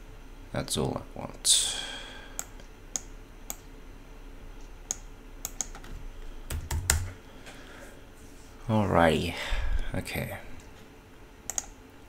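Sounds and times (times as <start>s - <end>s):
computer keyboard keystrokes: 4.9s - 5.9s, 6.5s - 7.2s, 11.5s - 11.8s.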